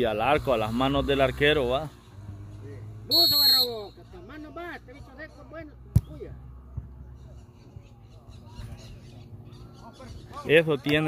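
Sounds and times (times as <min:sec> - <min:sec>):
referee's whistle blast: 0:03.1 - 0:04.0.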